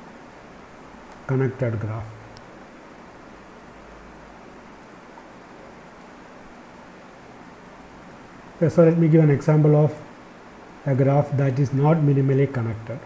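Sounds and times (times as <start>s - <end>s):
microphone hiss: 0.0s - 13.0s.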